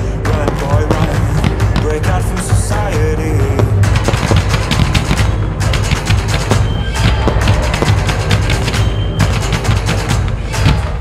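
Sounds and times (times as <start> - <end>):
fireworks banging and crackling: 0.0 - 11.0
music with heavy bass beat: 0.0 - 11.0.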